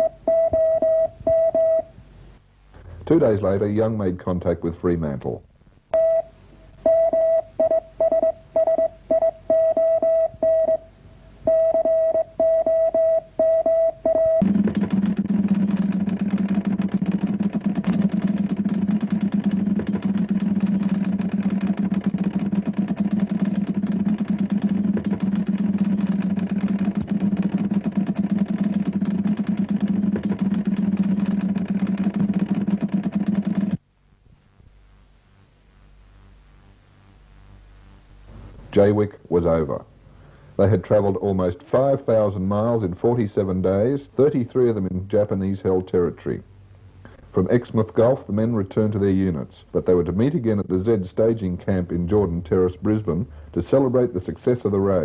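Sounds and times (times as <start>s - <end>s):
morse code beeps: 0.0s - 1.9s, 6.0s - 10.9s, 11.5s - 14.5s.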